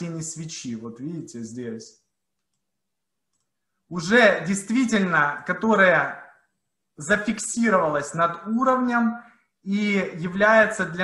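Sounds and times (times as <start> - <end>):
computer mouse clicks: 2.3 - 3.7.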